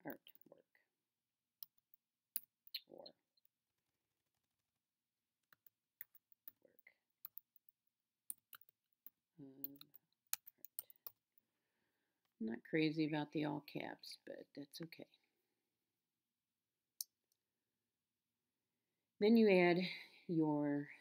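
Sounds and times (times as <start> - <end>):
keyboard typing: 5.5 - 8.8, 9.6 - 11.2.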